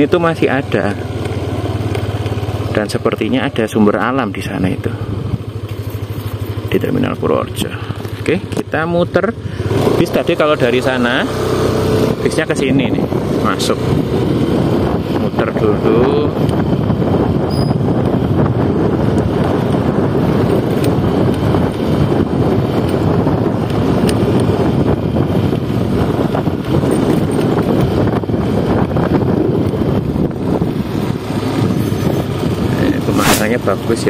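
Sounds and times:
motorcycle riding: 0.0s - 34.0s
wind rushing over microphone: 0.0s - 34.0s.

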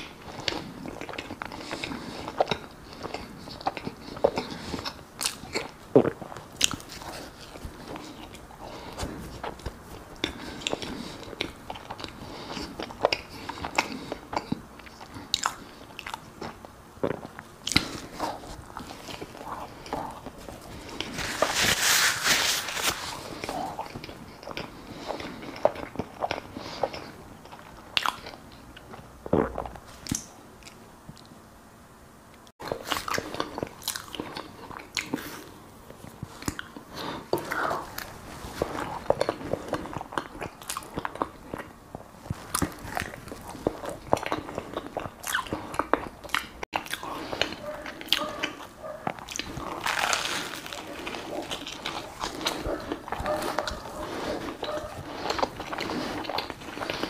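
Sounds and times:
chewing mouth sounds: 0.0s - 21.5s, 22.9s - 31.3s, 32.6s - 57.0s.

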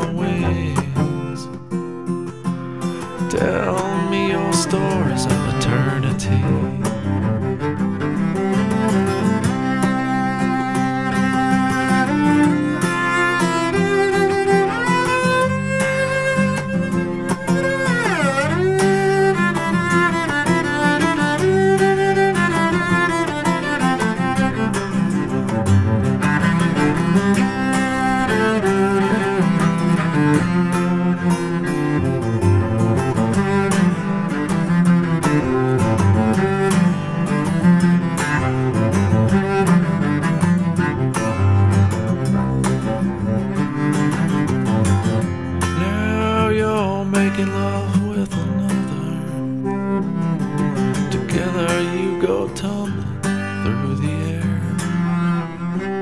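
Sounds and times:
bowed cello melody: 0.0s - 56.0s
plucked strings: 0.0s - 56.0s.

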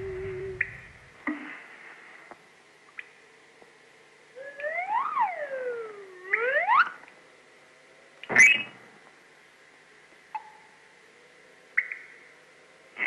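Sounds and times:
swooping whistle tone: 0.0s - 1.1s, 4.4s - 7.0s.

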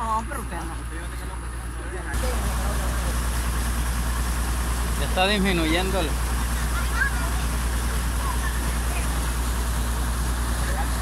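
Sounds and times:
diesel engine idling: 0.0s - 11.0s
muddy water rushing: 2.2s - 11.0s.

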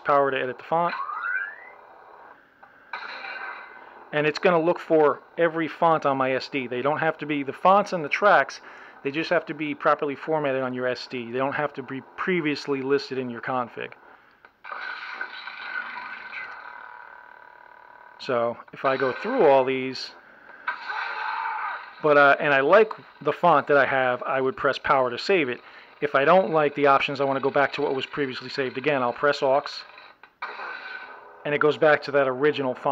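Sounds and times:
electronic held tones: 0.9s - 1.9s.

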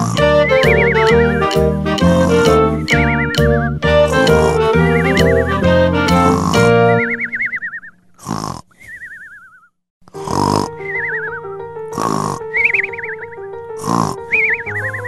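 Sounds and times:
cartoon snoring: 0.0s - 2.9s, 3.9s - 7.0s, 8.2s - 8.8s, 10.1s - 10.9s, 11.9s - 12.6s, 13.8s - 14.4s
light background music: 0.0s - 7.6s, 10.1s - 15.0s.

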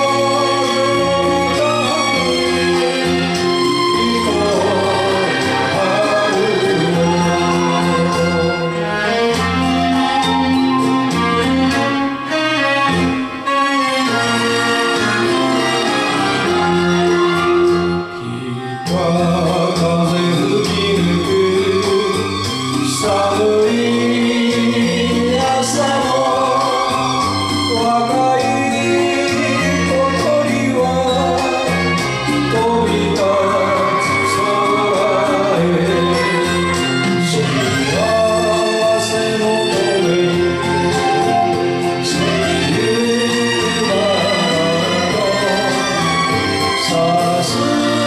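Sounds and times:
instrumental accompaniment: 0.0s - 48.0s
man singing into microphone: 0.0s - 48.0s.

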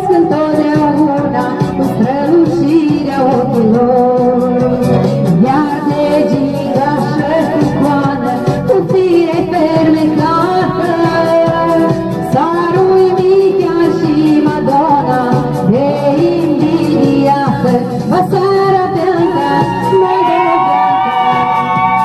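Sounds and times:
song with singing over a beat: 0.0s - 22.0s.

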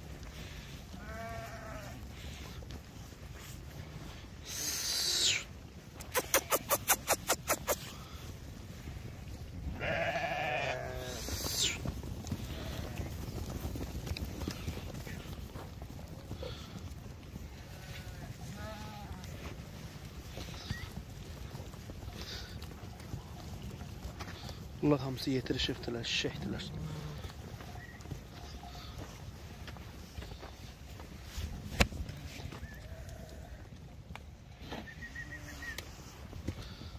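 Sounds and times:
low rumble of moving flock: 0.0s - 36.9s
sheep hooves on dirt track: 0.0s - 36.9s
sheep bleating: 0.9s - 2.0s, 9.7s - 11.8s, 17.5s - 19.5s, 32.6s - 33.7s.

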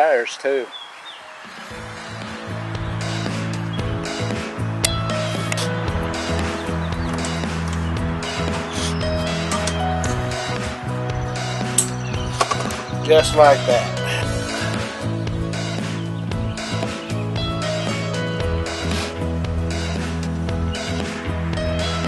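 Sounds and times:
background music with held chords: 1.4s - 22.0s.

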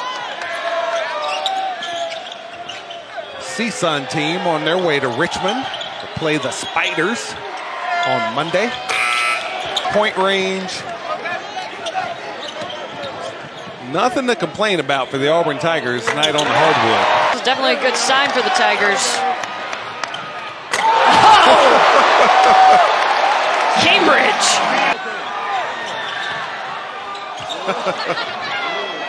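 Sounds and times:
arena crowd murmur: 10.0s - 29.0s.

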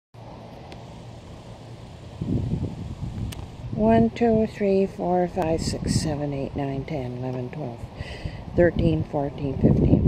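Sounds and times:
low rumble of moving car: 0.2s - 10.0s.

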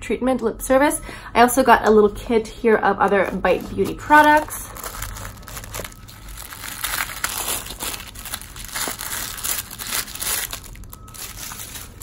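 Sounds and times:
tissue paper crinkling: 3.1s - 12.0s.

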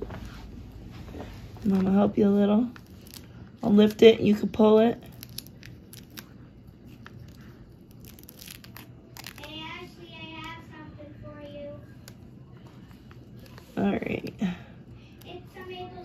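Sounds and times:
plastic film crinkling and tearing: 2.5s - 4.1s, 4.8s - 10.7s.

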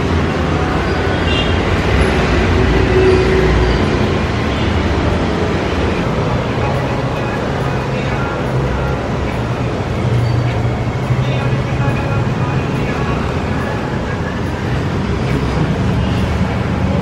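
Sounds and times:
loud wash of noise: 0.0s - 17.0s
voices: 0.0s - 17.0s.

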